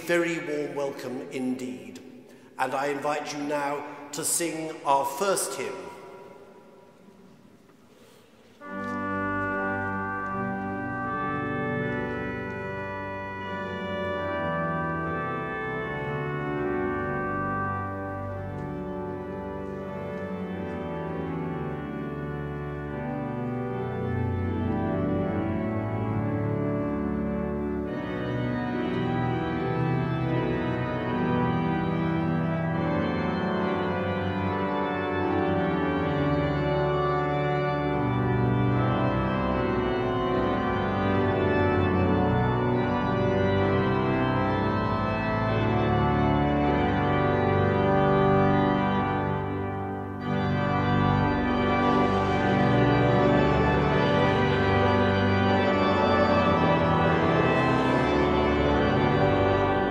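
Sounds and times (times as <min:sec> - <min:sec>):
pipe organ playing a hymn: 0:00.0 - 0:59.9.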